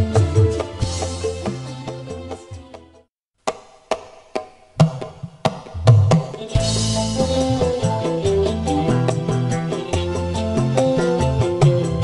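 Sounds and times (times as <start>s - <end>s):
sharp percussion strikes: 3.5s - 12.0s.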